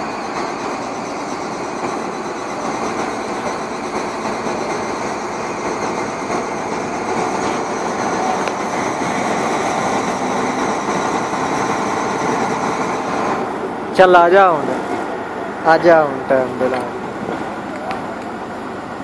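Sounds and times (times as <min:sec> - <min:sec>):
crane diesel engine running: 0:00.0 - 0:19.0.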